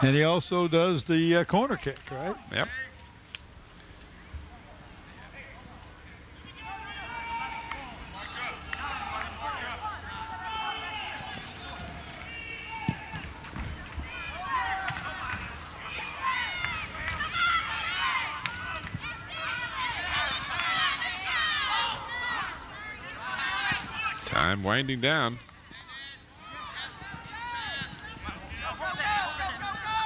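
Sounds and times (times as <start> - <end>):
distant people shouting: 6.4 - 30.0.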